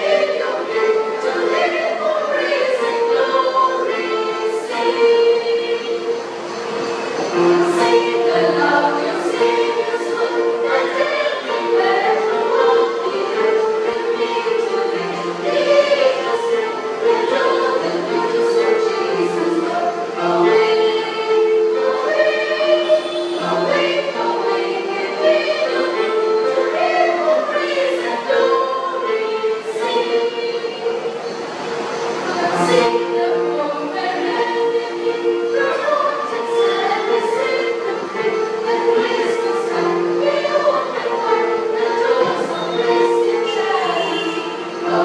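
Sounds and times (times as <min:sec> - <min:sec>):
church choir singing a hymn: 0:00.0 - 0:45.0.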